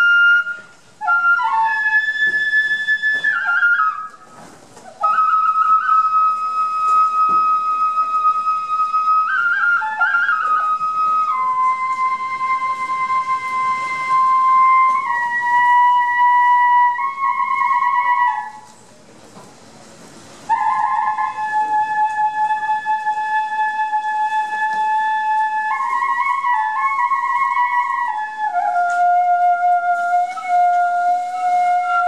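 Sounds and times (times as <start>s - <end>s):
bamboo flute long held notes: 0.0s - 18.8s, 20.4s - 32.0s.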